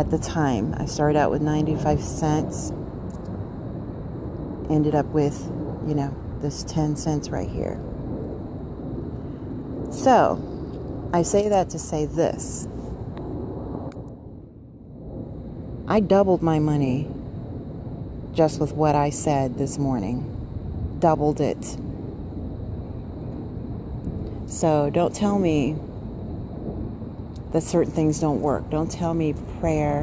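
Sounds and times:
wind rumbling on microphone: 0:00.0 - 0:30.0.

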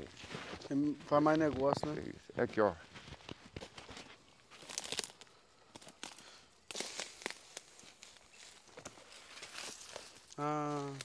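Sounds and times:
footsteps crunching on leaves: 0:02.8 - 0:11.0.

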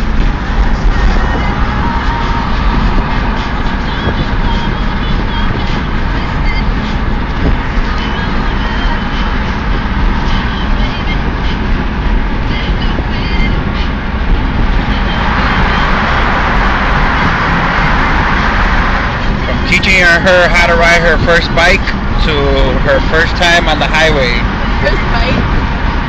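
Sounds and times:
car road and engine noise: 0:00.0 - 0:26.0.

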